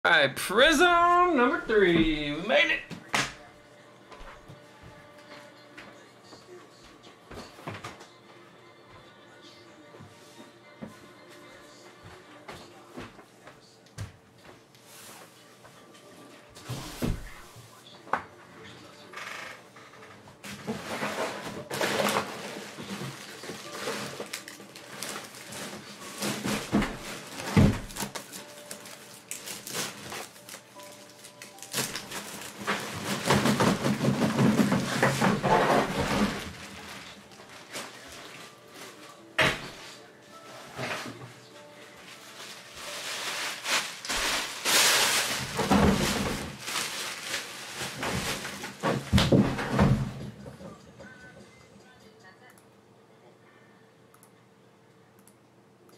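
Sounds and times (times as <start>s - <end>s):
packaging rustling and crinkling: 20.6s - 39.1s, 42.0s - 49.4s.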